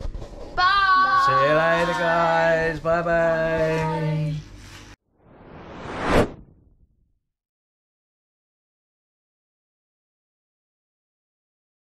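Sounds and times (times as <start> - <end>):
whoosh transition: 5.1 - 7.0.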